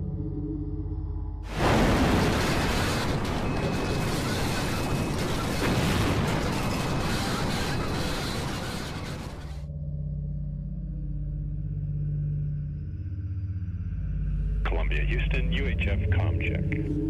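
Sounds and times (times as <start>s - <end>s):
low music drone: 0.0s - 1.5s, 9.6s - 17.0s.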